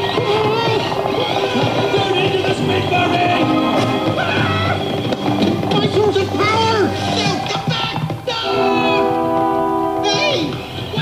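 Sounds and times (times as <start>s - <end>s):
busy film music: 0.0s - 11.0s
voices crying out and shouting: 0.0s - 11.0s.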